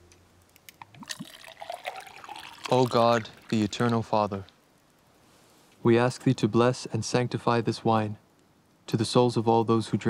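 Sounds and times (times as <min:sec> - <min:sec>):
wine pouring into clay cup: 0:00.7 - 0:04.5.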